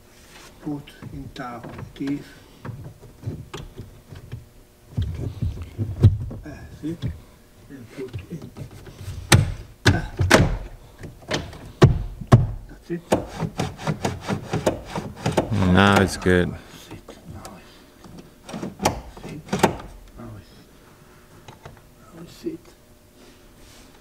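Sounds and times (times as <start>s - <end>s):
plastic trim knocks and snaps: 9.3s - 13.2s.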